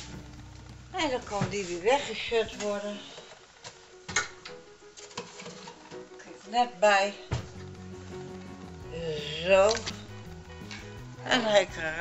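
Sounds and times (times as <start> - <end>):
kitchen items being handled: 1.1 - 6.6.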